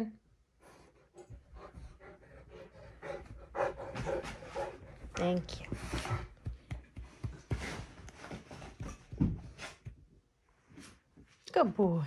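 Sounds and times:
large dog panting: 0.6 - 9.9.

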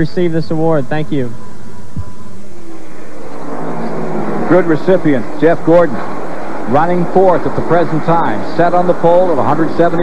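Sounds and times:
race car engines at speed: 2.4 - 10.0.

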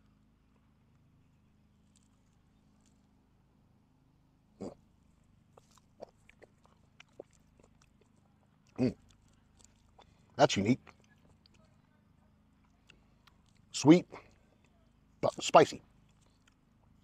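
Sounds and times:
man chewing: 1.8 - 3.1, 4.6 - 11.6, 12.6 - 14.7, 16.0 - 16.8
throaty mm sounds: 4.6 - 4.9.

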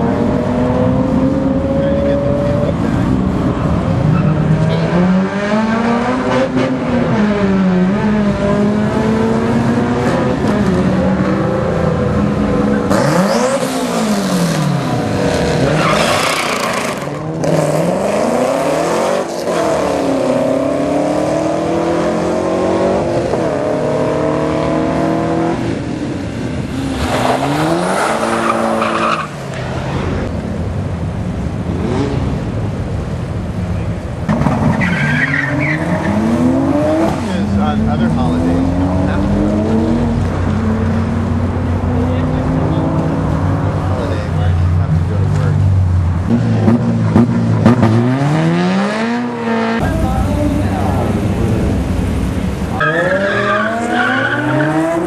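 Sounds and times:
car engines revving hard: 0.0 - 55.0
tire noise: 0.0 - 55.0.

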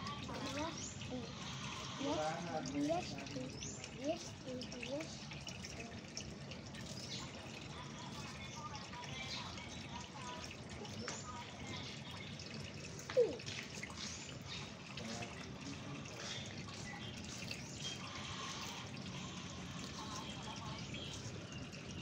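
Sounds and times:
tortoise chewing greens: 0.0 - 22.0.

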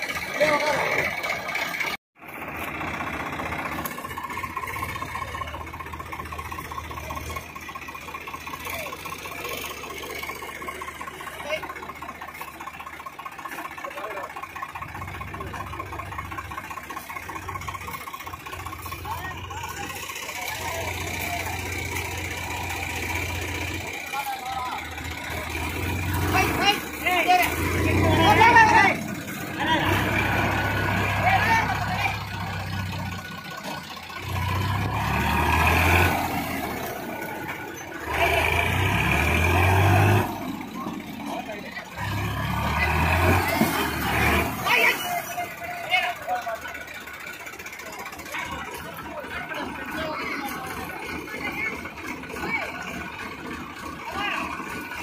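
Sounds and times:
tractor diesel engines revving: 0.0 - 55.0
men's voices: 8.4 - 34.9, 35.6 - 55.0.

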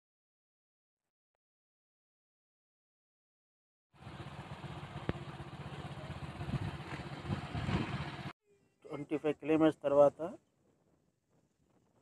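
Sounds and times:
vehicle engine and road noise: 4.0 - 8.4.

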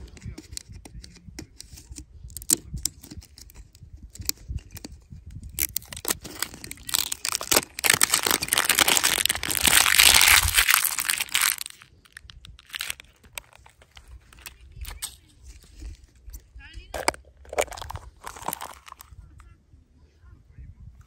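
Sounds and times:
plastic wrap crinkling and tearing: 5.6 - 16.1, 16.9 - 19.1.

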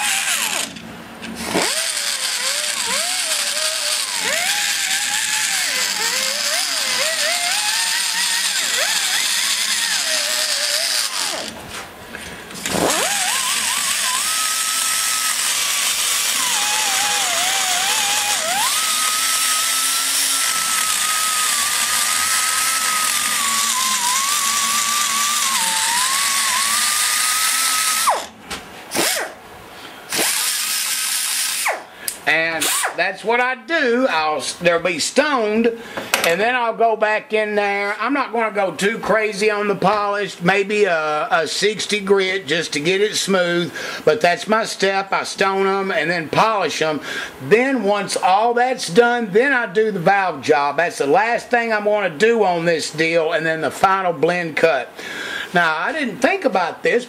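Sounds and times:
die grinder whining on metal: 0.0 - 11.6, 12.5 - 28.4, 30.1 - 31.8.

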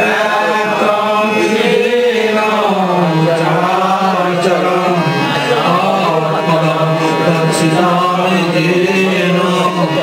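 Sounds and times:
person chanting in held notes: 0.0 - 10.0.

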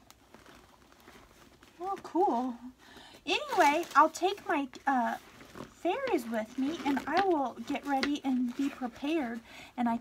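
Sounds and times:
leather bag rustling: 0.0 - 2.4, 3.3 - 9.4.

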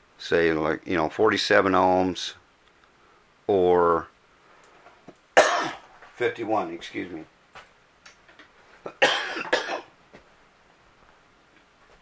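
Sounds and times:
man coughing: 5.4 - 5.8, 8.9 - 9.9.

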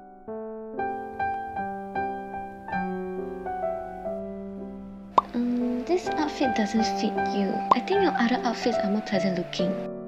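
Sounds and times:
soft piano music: 0.0 - 10.0
woman speaking: 5.2 - 9.8.

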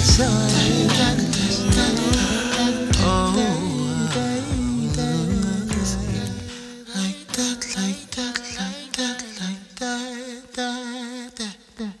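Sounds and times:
soul vocal held notes: 0.0 - 12.0.

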